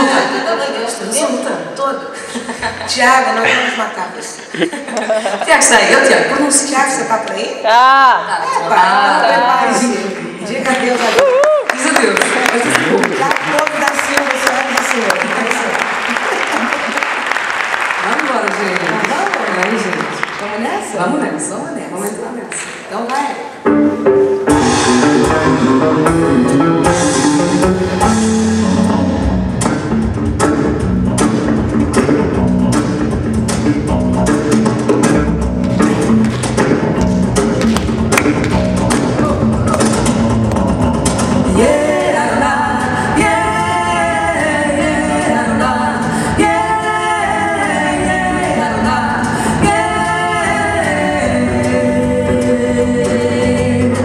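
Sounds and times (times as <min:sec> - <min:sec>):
bossa nova band playing: 0:23.5 - 0:54.0
electric bass guitar: 0:23.7 - 0:54.0
woman singing into microphone: 0:41.5 - 0:54.0.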